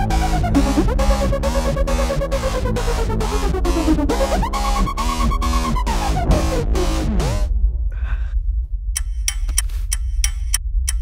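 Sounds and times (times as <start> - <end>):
steady low rumble: 0.0 - 11.0
wristwatch ticking: 9.0 - 11.0.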